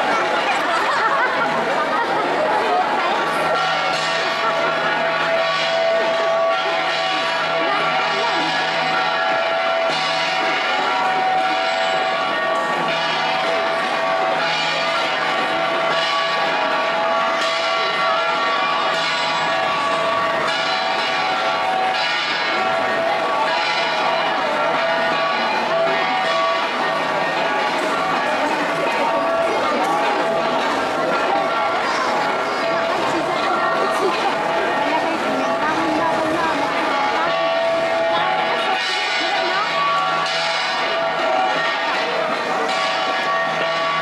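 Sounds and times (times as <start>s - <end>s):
crowd chatter: 0.0s - 44.0s
bronze gongs struck rhythmically: 0.1s - 44.0s.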